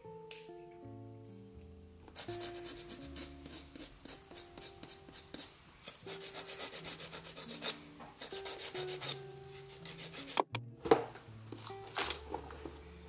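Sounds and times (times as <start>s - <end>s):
nail file rubbing on fingernail: 2.2s - 10.5s.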